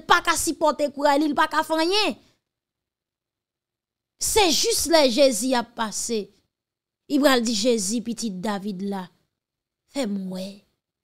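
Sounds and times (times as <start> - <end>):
woman speaking: 10.0 - 10.6.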